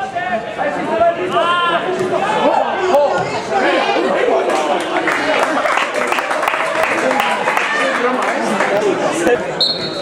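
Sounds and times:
crowd of voices talking and calling: 0.0s - 10.0s.

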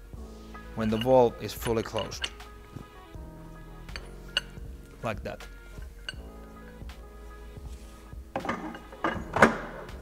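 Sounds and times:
background music: 0.0s - 10.0s
metal wrench clinking in tool case: 0.8s - 2.4s.

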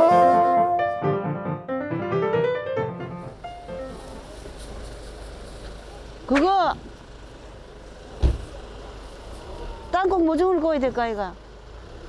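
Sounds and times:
short thump: 8.2s - 8.6s.

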